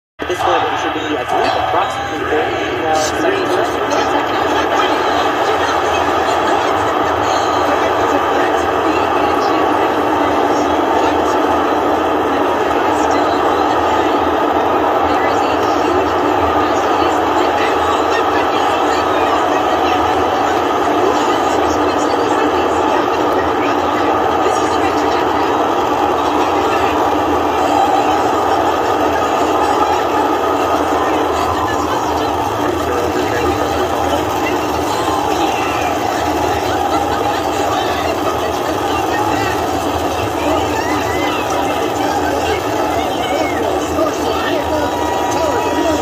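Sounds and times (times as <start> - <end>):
rocket engines roaring: 0.2 - 46.0.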